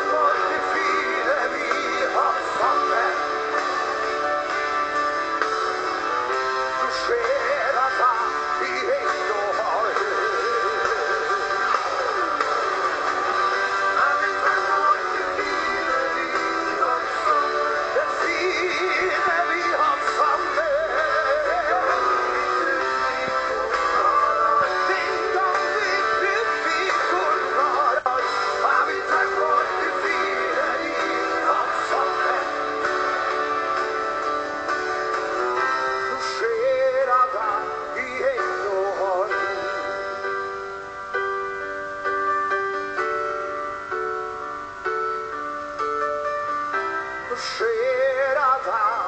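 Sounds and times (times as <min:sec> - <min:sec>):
person singing with vibrato: 0:00.0 - 0:04.6, 0:06.8 - 0:34.3, 0:35.6 - 0:41.0, 0:47.2 - 0:49.0
guitar chords: 0:00.0 - 0:49.0
keyboard chords: 0:00.0 - 0:49.0
pop rock band playing: 0:00.0 - 0:49.0.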